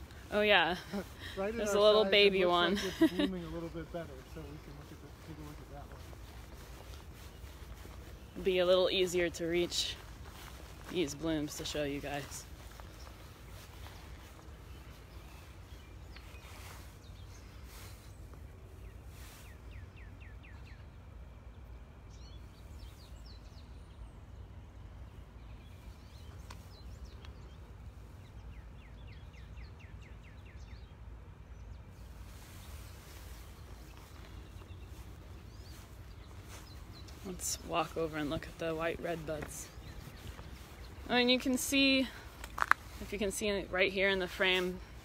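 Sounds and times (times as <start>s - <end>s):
steady low rumble: 0.0s - 45.0s.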